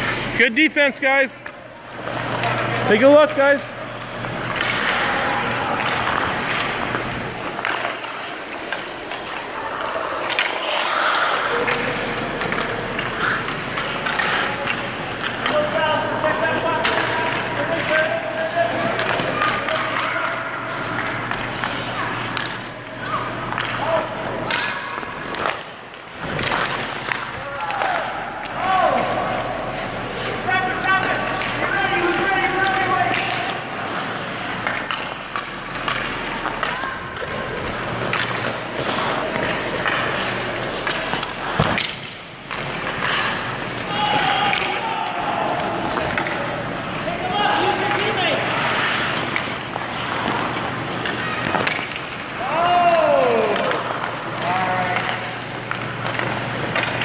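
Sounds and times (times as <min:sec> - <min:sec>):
skate blades scraping ice: 0:01.9 - 0:57.0.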